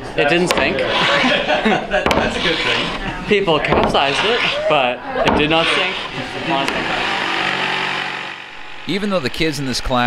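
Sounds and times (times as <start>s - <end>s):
electric power saw running: 5.3s - 8.9s.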